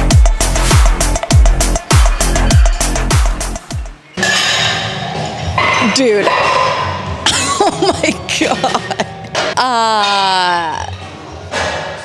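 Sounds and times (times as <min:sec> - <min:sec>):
electronic dance music: 0:00.0 - 0:04.0
heavy kick drum: 0:00.0 - 0:04.0
steady background noise: 0:01.0 - 0:12.0
woman laughing: 0:07.3 - 0:10.2.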